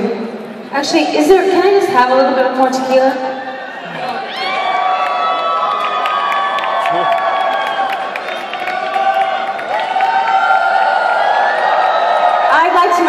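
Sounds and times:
crowd cheering: 0:03.2 - 0:13.0.

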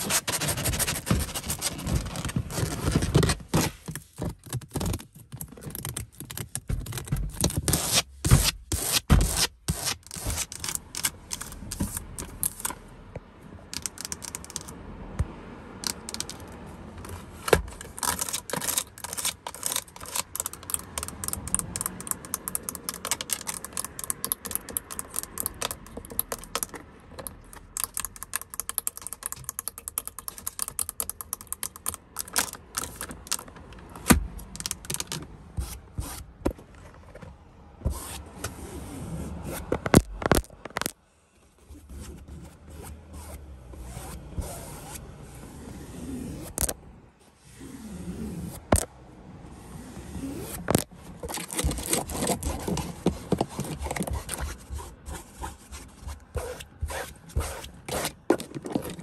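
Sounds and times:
fingernails scratching car seat: 0:00.0 - 0:12.6, 0:17.0 - 0:33.4, 0:35.6 - 0:36.4, 0:37.9 - 0:39.9, 0:41.7 - 0:46.7, 0:47.5 - 0:48.8, 0:49.6 - 0:59.0.

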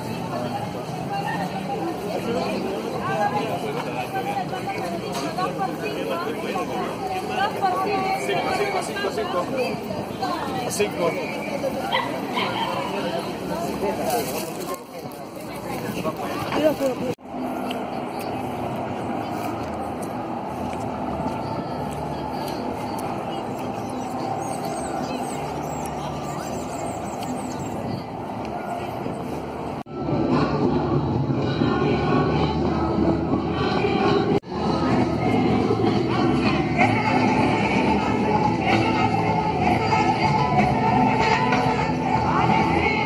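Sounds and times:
crowd voices: 0:00.0 - 0:43.0
steady background din: 0:00.0 - 0:43.0.

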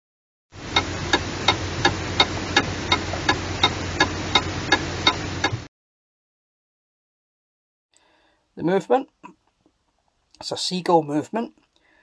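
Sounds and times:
mechanical ticking: 0:00.6 - 0:05.7
steady low hum: 0:00.6 - 0:05.7.

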